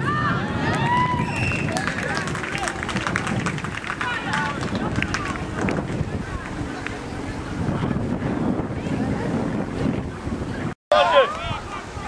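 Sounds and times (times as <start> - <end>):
wind buffeting microphone: 0.0 - 12.0
distant shouting voices: 10.9 - 12.0.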